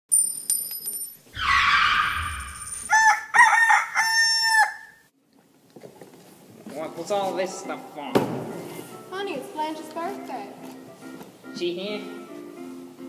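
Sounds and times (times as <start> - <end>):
bird crowing call: 1.4 - 5.0.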